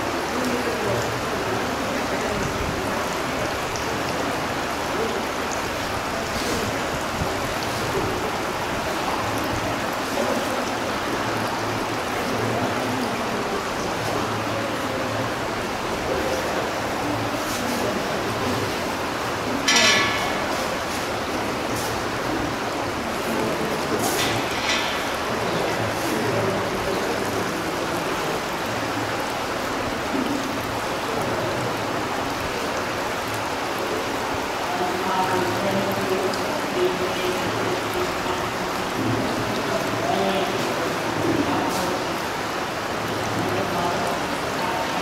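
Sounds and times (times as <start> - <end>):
faint indistinct voices: 0.0 - 45.0
rushing water-like noise: 0.0 - 45.0.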